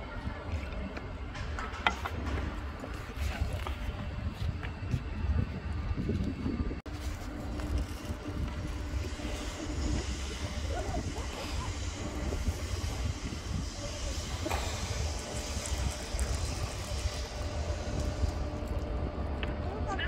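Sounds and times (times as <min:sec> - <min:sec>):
low city rumble: 0:00.0 - 0:20.0
even hiss: 0:08.7 - 0:18.8.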